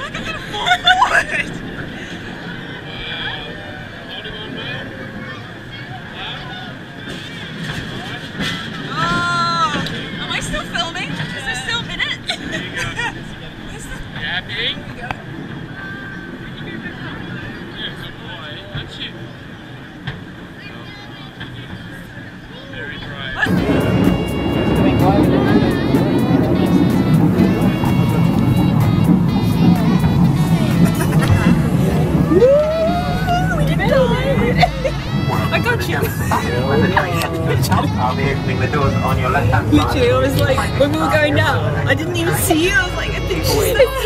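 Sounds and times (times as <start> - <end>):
passengers talking: 0.0 - 44.0
railway carriage running noise: 0.0 - 44.0
music with steady beat: 23.5 - 32.3.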